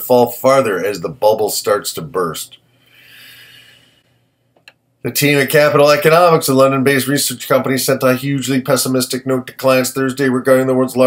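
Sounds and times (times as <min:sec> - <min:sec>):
man reading aloud: 0:00.0 - 0:02.6, 0:05.0 - 0:11.0
man's intake of breath: 0:02.6 - 0:04.3.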